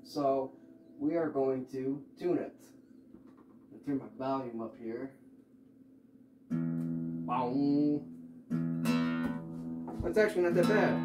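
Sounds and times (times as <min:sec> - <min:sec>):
acoustic guitar strings ringing: 0:06.5 - 0:11.0.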